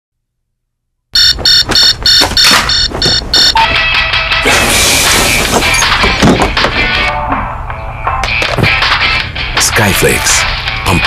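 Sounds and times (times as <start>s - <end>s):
electronic alarm beeping: 1.2s - 3.8s.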